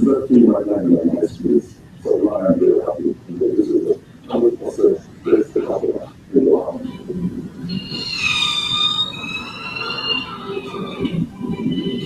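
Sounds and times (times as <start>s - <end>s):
low murmur of voice: 0.0s - 8.6s.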